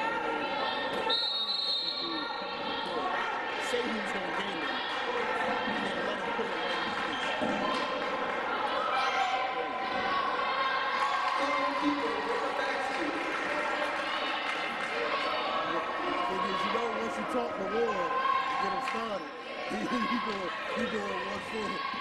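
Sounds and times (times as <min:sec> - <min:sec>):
chatter of spectators: 0:00.0 - 0:22.0.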